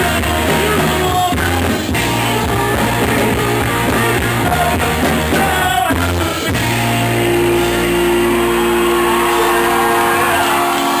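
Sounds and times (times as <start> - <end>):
rock band distorted chord: 0.0 - 11.0.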